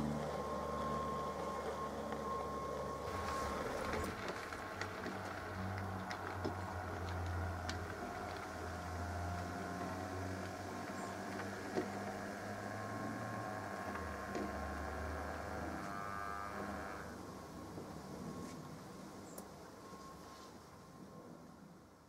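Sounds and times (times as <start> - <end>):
wheels clicking on rails: 0.0 - 16.5
model train motor hum: 0.0 - 17.3.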